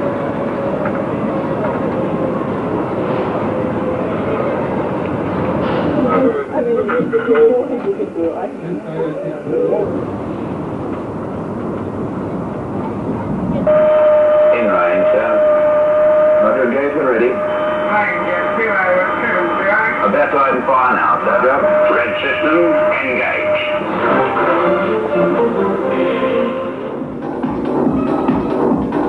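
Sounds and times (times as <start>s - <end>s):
steady high tone: 13.6s - 27.1s
voices from television film: 16.3s - 25.0s.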